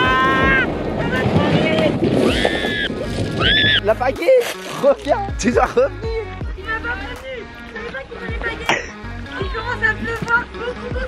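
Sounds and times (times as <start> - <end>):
kayak hull scraping on pebbles: 0.0 - 5.8.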